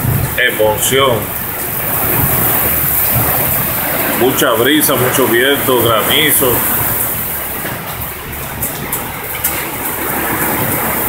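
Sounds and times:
heavy rain and hail: 0.0 - 11.0
strong wind: 0.0 - 11.0.

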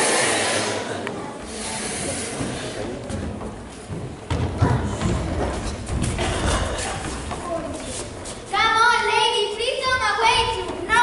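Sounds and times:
noisy hall: 0.0 - 11.0
footsteps on wooden stage floor: 2.0 - 9.2.

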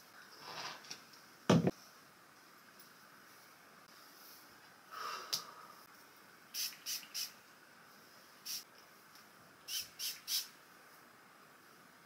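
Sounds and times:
spray bottle spritzing: 6.5 - 7.4, 8.4 - 8.6, 9.7 - 10.5.

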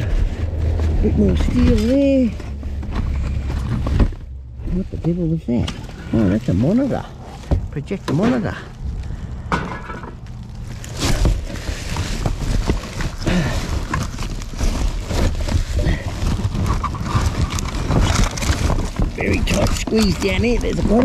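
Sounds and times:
loose objects clattering: 9.4 - 21.0
plastic bags crinkling: 10.2 - 21.0.

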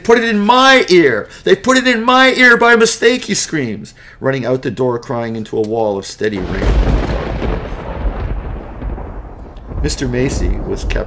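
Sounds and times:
thunder rumbling: 6.4 - 11.0.

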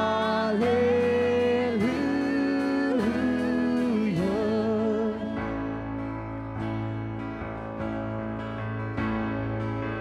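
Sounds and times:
worship band playing slow song: 0.0 - 10.0.

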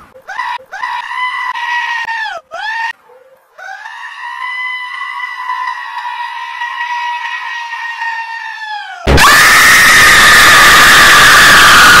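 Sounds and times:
harsh jumpscare scream: 3.7 - 12.0.

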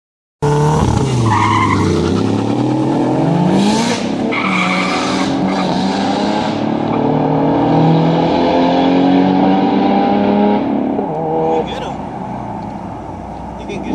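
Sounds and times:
car engines accelerating: 0.4 - 13.9.

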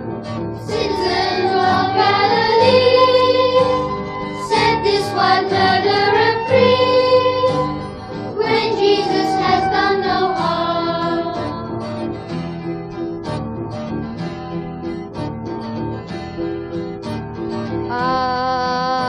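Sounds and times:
plucked guitar: 0.0 - 19.0
choir singing: 0.6 - 12.4
sustained chord with vibrato: 0.7 - 12.7.

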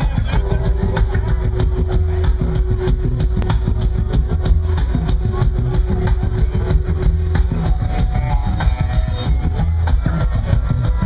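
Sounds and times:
dub reggae band playing: 0.0 - 11.0.

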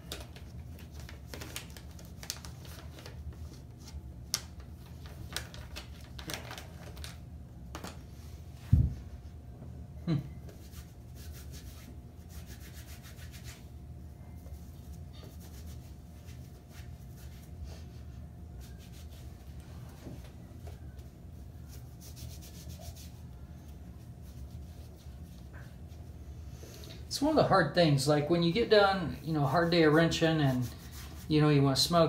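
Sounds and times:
low steady hum: 0.0 - 32.0
wipe rubbing over hands: 10.5 - 13.7, 20.6 - 26.1, 29.4 - 31.5.

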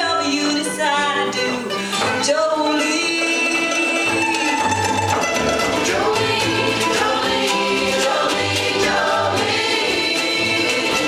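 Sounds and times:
ukuleles strumming: 0.0 - 11.0
upright bass: 0.0 - 11.0
many voices singing: 5.6 - 11.0.

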